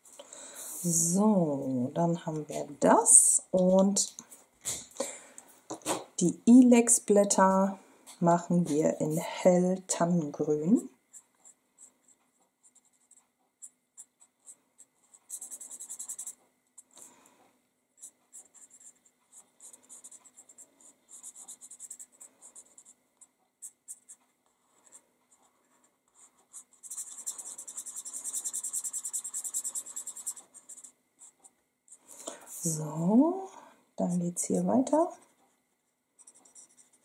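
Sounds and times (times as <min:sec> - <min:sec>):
marker scratching across card: 0:11.2 - 0:17.0, 0:18.0 - 0:31.6, 0:36.2 - 0:37.0.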